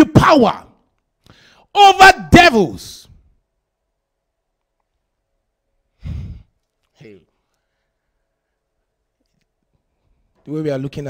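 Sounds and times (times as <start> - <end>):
man sighing into microphone: 6.0 - 6.5.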